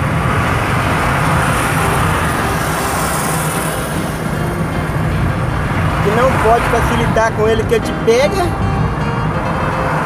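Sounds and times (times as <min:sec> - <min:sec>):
car driving cabin rumble: 0:00.0 - 0:10.0.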